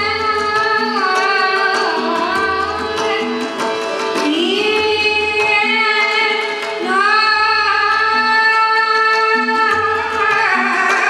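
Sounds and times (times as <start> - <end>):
tabla drumming: 0.0 - 11.0.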